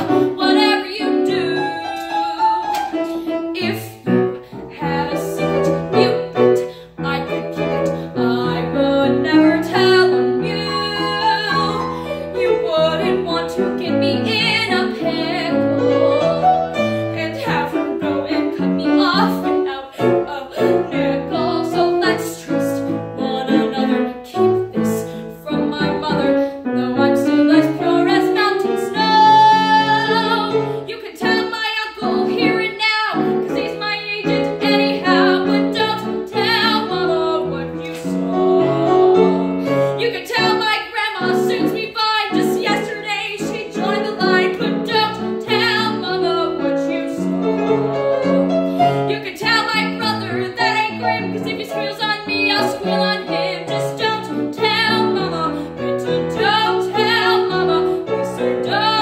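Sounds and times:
woman singing show tune: 0.0s - 15.8s
grand piano: 0.0s - 59.0s.

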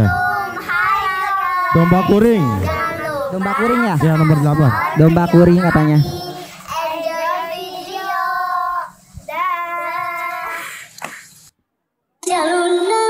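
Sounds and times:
child singing: 0.0s - 10.8s, 12.2s - 13.0s.

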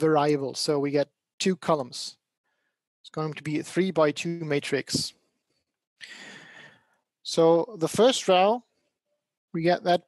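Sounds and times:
man breathing: 5.3s - 7.1s.

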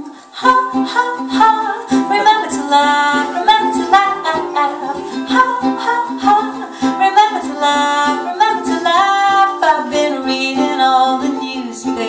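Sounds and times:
soft ukulele strumming: 0.0s - 12.0s
woman singing: 0.0s - 12.0s.

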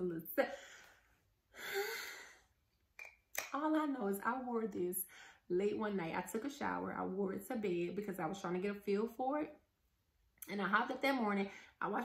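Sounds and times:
woman sighing: 1.5s - 2.5s.

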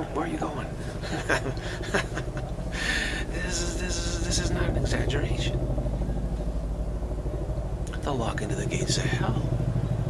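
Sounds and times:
man laughing in breathy bursts: 0.8s - 3.4s
hissing breath: 2.7s - 3.3s.

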